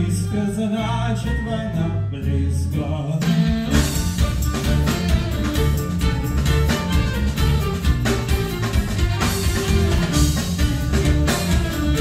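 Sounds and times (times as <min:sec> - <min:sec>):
double bass notes: 0:00.0 - 0:12.0
drums and cymbals: 0:02.6 - 0:12.0.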